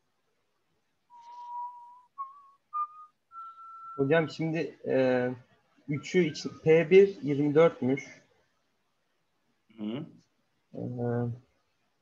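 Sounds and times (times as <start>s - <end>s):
person whistling rising notes: 1.1s - 4.1s.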